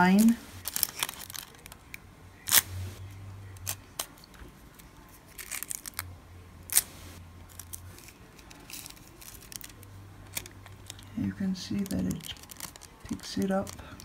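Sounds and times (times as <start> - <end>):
faint low hum: 0.0 - 14.0
foil crinkling: 0.2 - 2.7, 4.8 - 6.0, 6.7 - 14.0.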